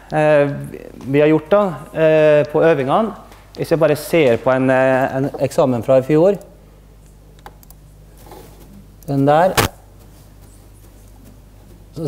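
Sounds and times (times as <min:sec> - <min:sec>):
person speaking: 0:00.0 - 0:06.6, 0:09.0 - 0:09.8
steady low hum: 0:00.0 - 0:12.0.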